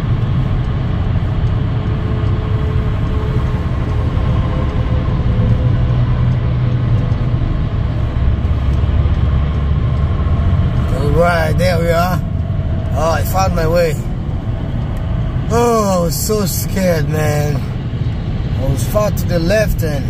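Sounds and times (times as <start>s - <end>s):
car road noise rumble: 0.0s - 20.0s.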